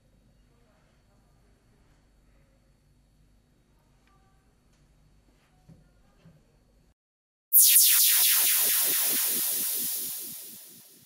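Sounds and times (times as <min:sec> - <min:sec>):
hissing whoosh with falling sweeps: 0:07.6 - 0:11.0.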